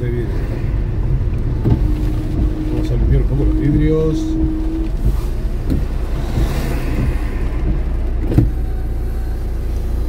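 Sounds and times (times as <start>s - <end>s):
car engine idling: 0.0s - 10.0s
windshield wipers sweeping wet glass: 0.1s - 10.0s.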